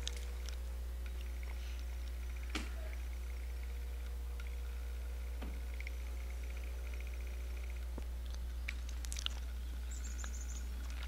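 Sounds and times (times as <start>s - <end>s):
songbird chirps: 0.0s - 11.0s
steady low hum: 0.0s - 11.0s.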